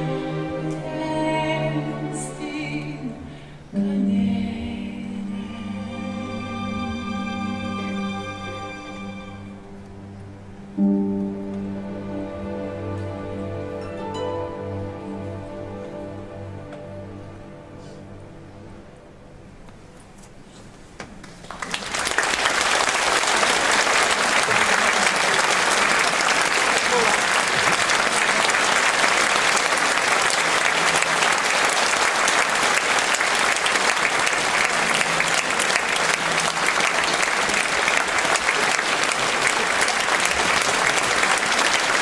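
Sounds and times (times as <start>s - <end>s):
audience applauding: 21.2s - 42.0s.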